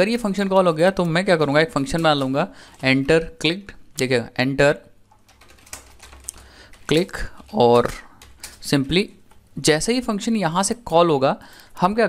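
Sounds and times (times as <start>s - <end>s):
typing on computer keyboard: 5.1s - 9.4s.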